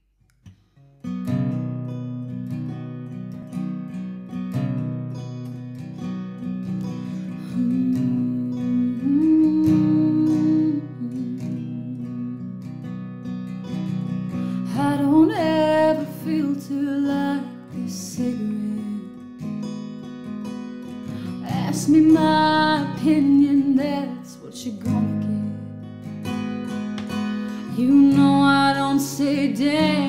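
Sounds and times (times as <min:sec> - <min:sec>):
acoustic guitar playing: 0:00.0 - 0:30.0
woman singing: 0:07.2 - 0:12.9, 0:14.6 - 0:19.5, 0:21.1 - 0:25.9, 0:27.4 - 0:30.0.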